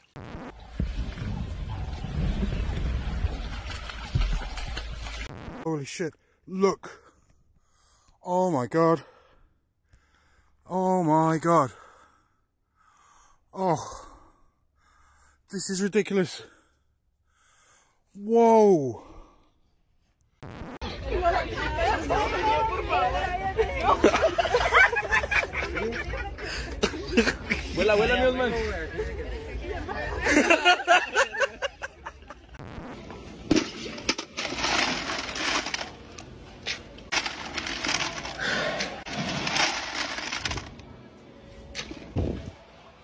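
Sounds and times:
people chattering: 0:20.8 - 0:24.8, 0:25.5 - 0:30.8.

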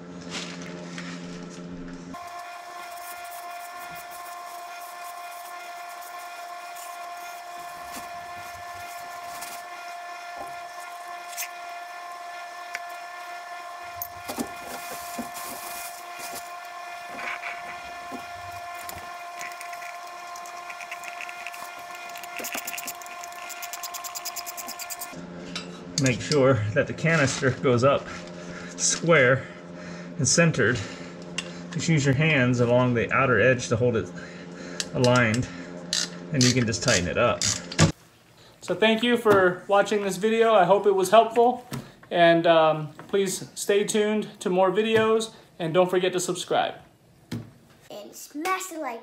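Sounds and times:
steady tonal hum: 0:12.5 - 0:37.8
hands rubbing metal canister: 0:19.4 - 0:25.1.

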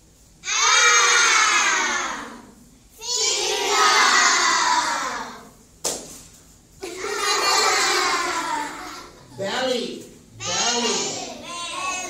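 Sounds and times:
children calling out in chorus: 0:00.4 - 0:05.5, 0:10.4 - 0:12.0.

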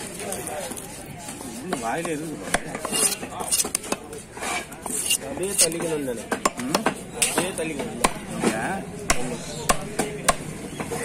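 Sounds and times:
knife chopping fish on wooden block: 0:02.0 - 0:04.0, 0:04.8 - 0:08.3, 0:09.1 - 0:10.5.

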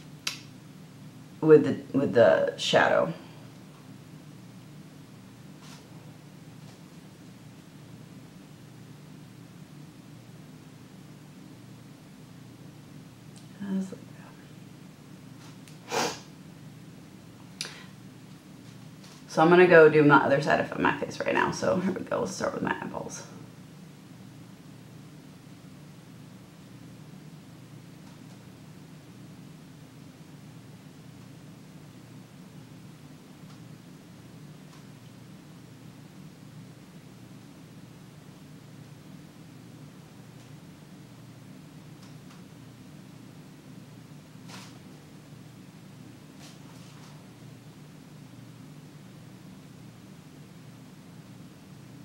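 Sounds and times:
steady low hum: 0:00.0 - 0:52.0.

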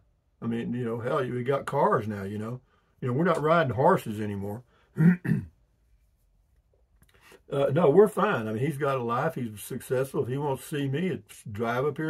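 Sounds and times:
man clearing his throat: 0:05.0 - 0:05.6.

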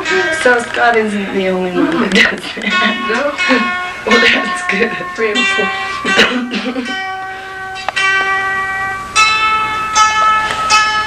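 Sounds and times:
live instrumental music chords: 0:00.0 - 0:11.0
person laughing: 0:01.7 - 0:04.6, 0:06.0 - 0:07.0.

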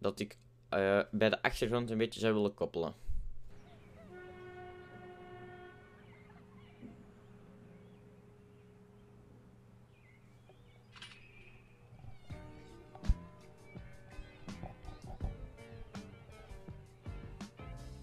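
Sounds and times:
low steady hum: 0:00.0 - 0:18.0
brief horn-like tone: 0:04.0 - 0:07.1
music: 0:12.1 - 0:18.0.

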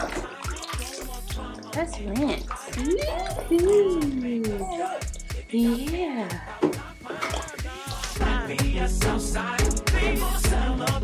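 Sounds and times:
water pouring in plastic tub: 0:00.0 - 0:04.3, 0:07.1 - 0:08.2
background music with singing: 0:00.0 - 0:11.0.

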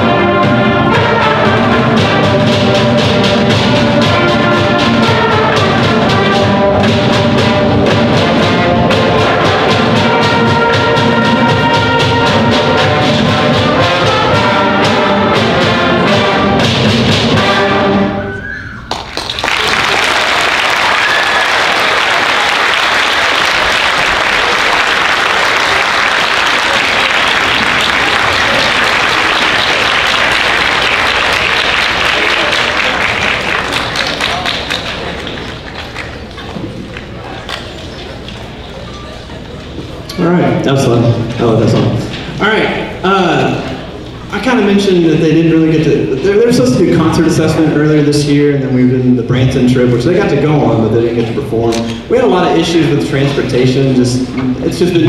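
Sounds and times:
concert band playing: 0:00.0 - 0:55.0
audience applauding: 0:18.7 - 0:38.5.

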